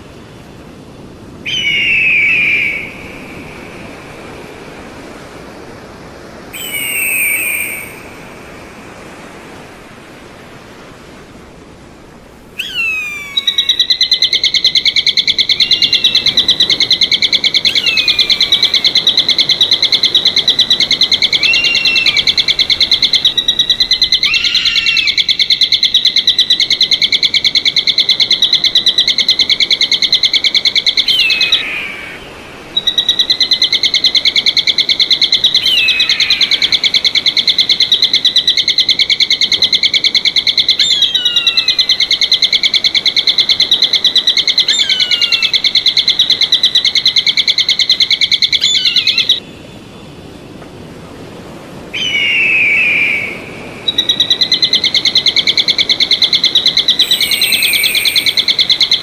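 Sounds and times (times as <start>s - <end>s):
downward sliding whistled bird calls: 1.5s - 3.9s, 6.5s - 8.5s, 12.6s - 32.2s, 32.8s - 49.4s, 51.9s - 59.0s
fast-pulsing bird trill: 12.6s - 26.3s, 56.1s - 59.0s.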